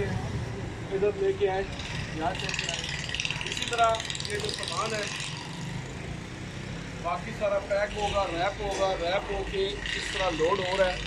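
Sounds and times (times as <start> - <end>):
vehicle engine humming: 0.0 - 11.0.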